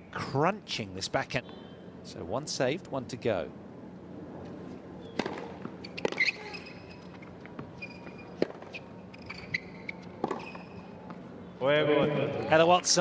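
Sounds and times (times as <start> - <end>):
shoe squeaks on court: 5.0 - 11.0
racket hitting tennis ball: 5.1 - 11.2.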